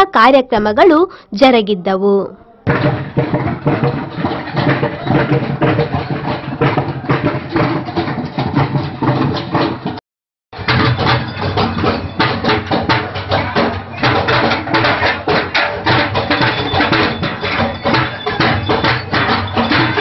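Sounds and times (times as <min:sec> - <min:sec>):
frame drums beaten fast: 0:02.7 - 0:10.0, 0:10.6 - 0:20.0.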